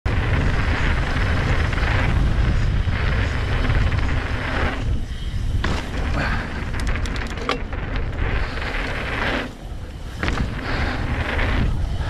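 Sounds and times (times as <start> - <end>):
bike tyres rumbling on gravel: 0.1 - 12.0
wind buffeting microphone: 0.1 - 12.0.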